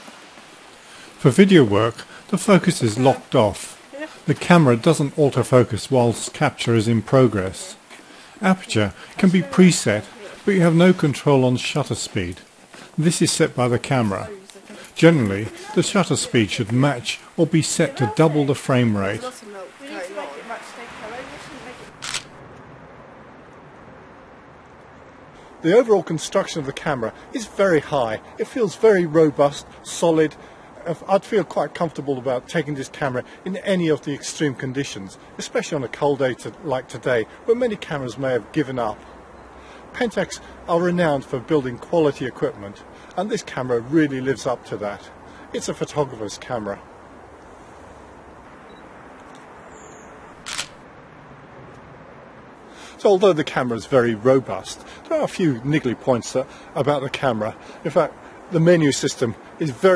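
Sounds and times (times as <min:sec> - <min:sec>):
faint voices outdoors: 0:00.0 - 0:22.3, 0:23.7 - 0:49.6, 0:51.9 - 0:59.9
low steady background hiss: 0:00.0 - 0:59.9
camera shutter click: 0:22.0 - 0:22.4, 0:50.4 - 0:50.8.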